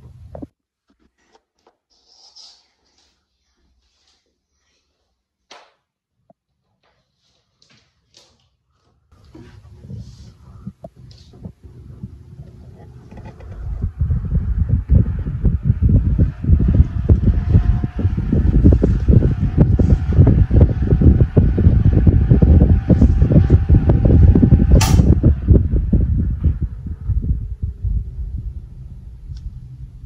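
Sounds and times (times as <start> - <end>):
desk fan airflow buffeting: 0.0 - 0.5, 8.9 - 30.0
fan motor hum: 9.1 - 30.0
sharp click: 24.8 - 25.1.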